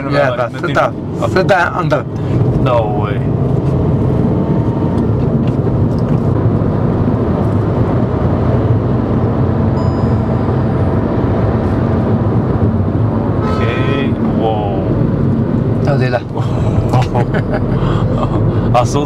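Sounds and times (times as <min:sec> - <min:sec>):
car engine hum: 0:00.0 - 0:19.0.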